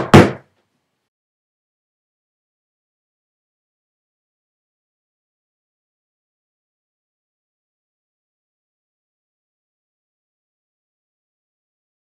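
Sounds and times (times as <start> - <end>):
quick sharp knocks: 0.0 - 0.4.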